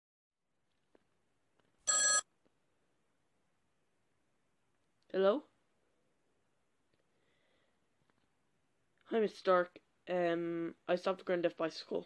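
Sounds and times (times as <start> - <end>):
electronic telephone ring: 1.9 - 2.3.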